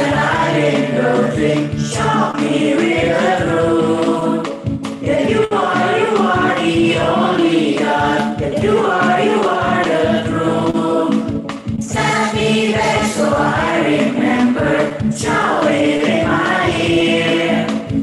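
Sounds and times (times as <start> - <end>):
children's choir singing: 0.0 - 18.0.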